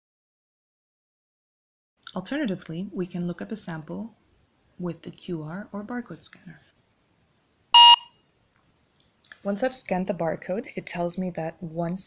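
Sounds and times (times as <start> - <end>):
short electronic beep: 7.8 - 8.2.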